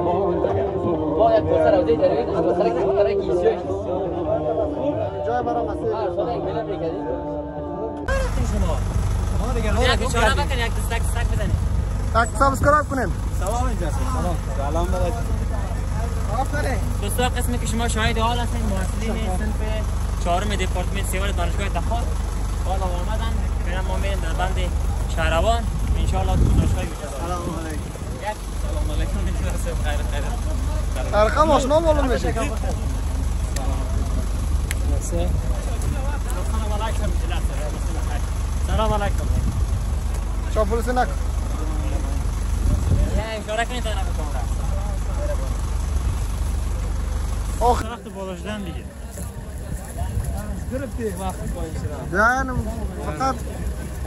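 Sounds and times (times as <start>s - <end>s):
men calling out: 0.0s - 39.2s
bus engine idling: 0.0s - 54.0s
voices: 0.0s - 54.0s.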